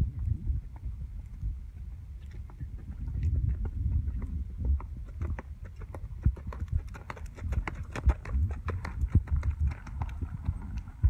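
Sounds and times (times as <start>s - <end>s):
low rumble: 0.0s - 11.0s
hoofbeats on dirt: 2.2s - 11.0s.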